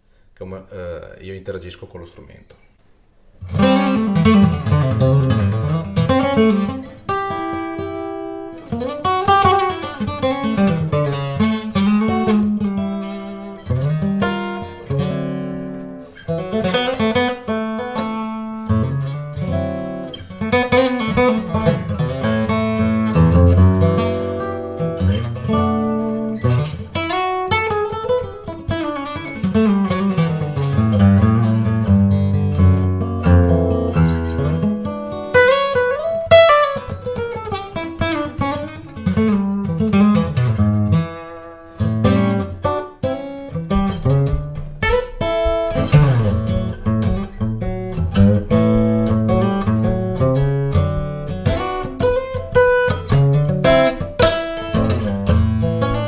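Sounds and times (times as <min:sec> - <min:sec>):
acoustic guitar playing: 0:02.8 - 0:56.0.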